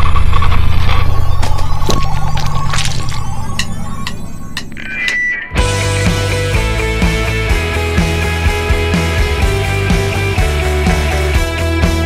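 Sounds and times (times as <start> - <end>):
low bass drone: 0.0 - 4.9, 5.6 - 12.0.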